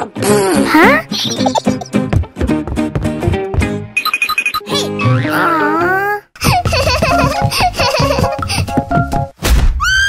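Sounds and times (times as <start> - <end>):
background music: 0.0 - 4.0, 4.6 - 9.4
cartoon high-pitched giggling: 0.7 - 1.9, 6.4 - 8.6
thump: 9.4 - 9.8.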